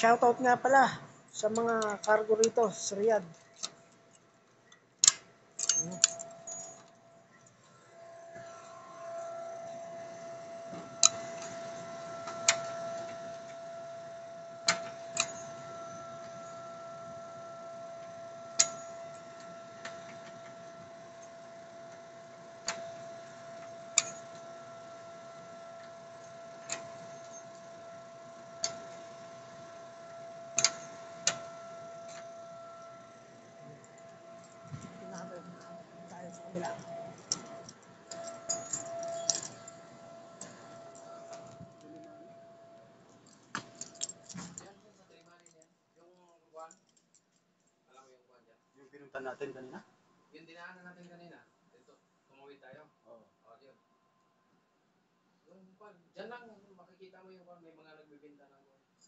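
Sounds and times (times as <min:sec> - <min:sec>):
steady high-pitched hum: 0:00.0 - 0:45.5.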